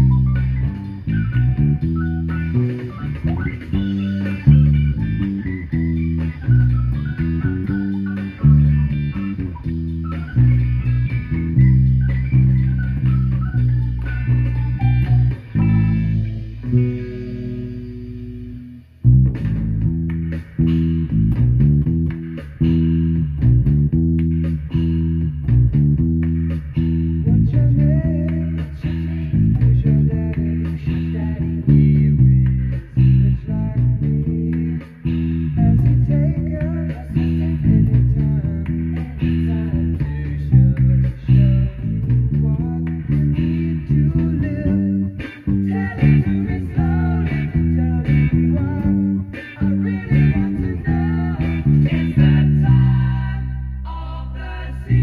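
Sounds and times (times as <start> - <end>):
electric bass guitar plucked: 0.0 - 55.0
recorded rock song: 0.0 - 55.0.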